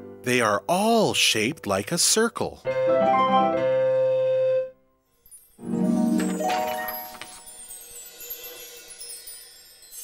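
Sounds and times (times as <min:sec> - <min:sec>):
high shimmering chime: 0:05.1 - 0:10.0.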